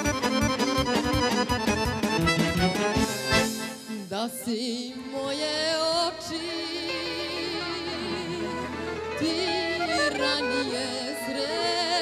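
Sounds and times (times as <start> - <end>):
folk band with accordion: 0.0 - 12.0.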